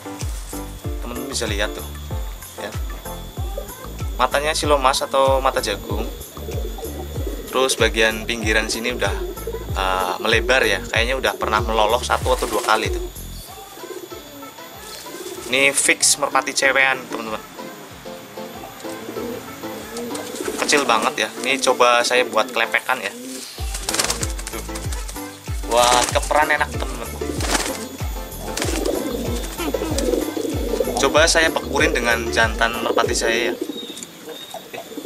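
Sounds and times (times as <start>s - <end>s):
music with a bass beat: 0.0s - 13.5s, 23.6s - 33.4s
pigeon cooing: 1.0s - 35.0s
pigeon wings flapping: 9.8s - 13.1s, 19.9s - 21.7s, 23.3s - 33.4s.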